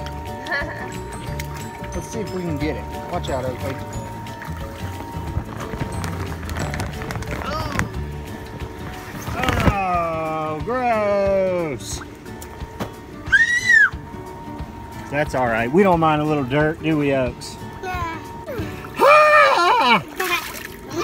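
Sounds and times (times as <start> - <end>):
background music: 0.0 - 21.0.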